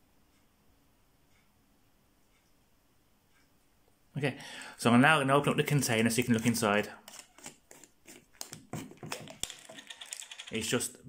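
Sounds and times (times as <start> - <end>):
plastic screw cap clicking: 7.1 - 10.5.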